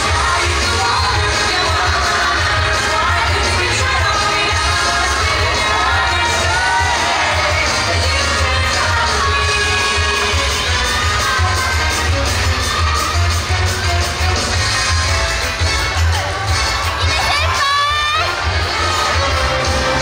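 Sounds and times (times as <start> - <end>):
audience cheering and shouting: 0.0 - 20.0.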